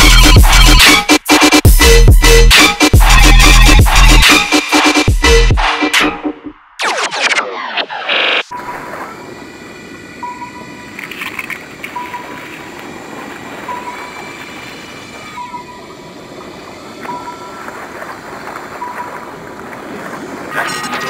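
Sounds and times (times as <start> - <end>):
noisy ambient electronic bed: 6.8 - 21.0
held high synth tones: 20.5 - 21.0
short high beeps: 20.5 - 21.0.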